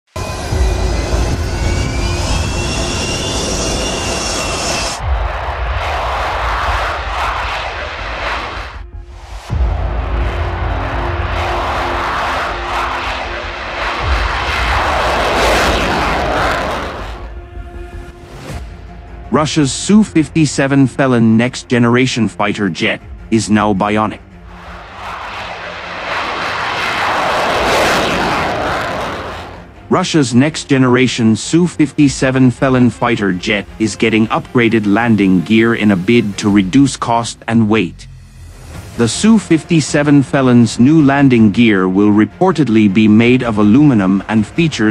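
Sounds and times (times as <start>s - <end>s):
jet taking off: 0.0s - 18.4s, 22.3s - 37.1s, 38.7s - 44.9s
jet engines whining: 0.1s - 21.0s, 22.6s - 37.1s, 39.0s - 44.9s.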